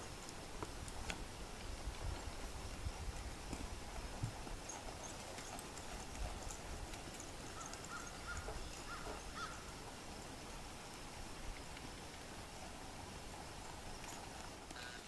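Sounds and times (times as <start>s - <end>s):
horse hoofbeats on dirt: 0.0s - 15.0s
high squeaky calls: 7.5s - 9.7s.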